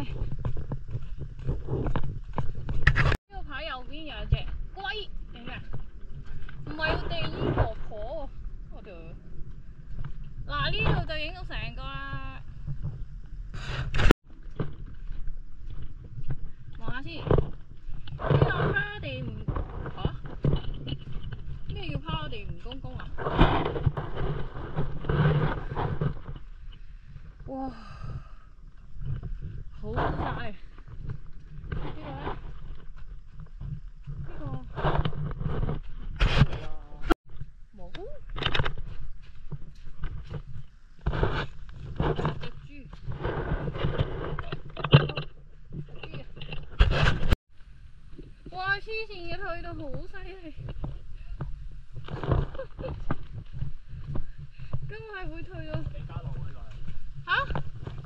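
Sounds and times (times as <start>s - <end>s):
wind rumble on microphone: 0.0s - 58.0s.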